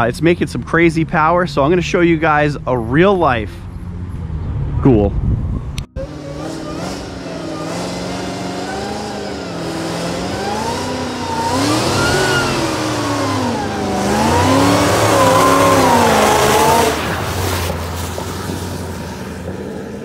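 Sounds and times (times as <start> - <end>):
car engine revving hard: 6.0 - 20.0.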